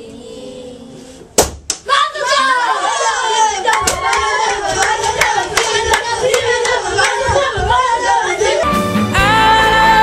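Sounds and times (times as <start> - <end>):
children shouting and singing: 1.9 - 8.8
rhythmic hand-clapping: 3.7 - 7.6.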